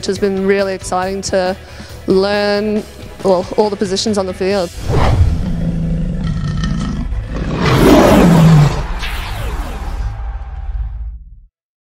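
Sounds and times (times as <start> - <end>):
lion roaring: 4.8 - 9.0.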